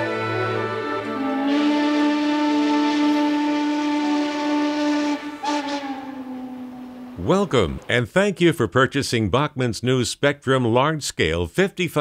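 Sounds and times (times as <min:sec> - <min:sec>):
steam locomotive chime whistle: 0:00.0 - 0:07.4.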